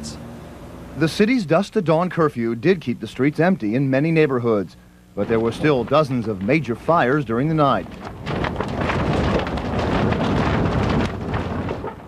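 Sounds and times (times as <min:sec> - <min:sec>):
person narrating: 0:01.0 - 0:07.9.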